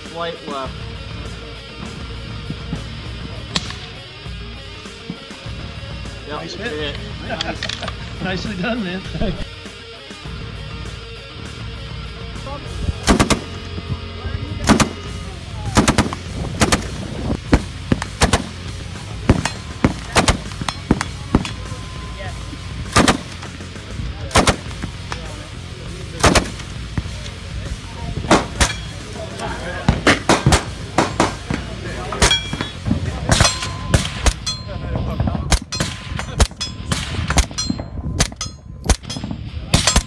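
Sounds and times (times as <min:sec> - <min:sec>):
rifle shots: 0:13.0 - 0:13.6, 0:14.6 - 0:21.7, 0:22.9 - 0:23.6, 0:24.3 - 0:25.2, 0:26.2 - 0:26.7, 0:28.3 - 0:28.9, 0:29.8 - 0:31.6, 0:35.5 - 0:40.0.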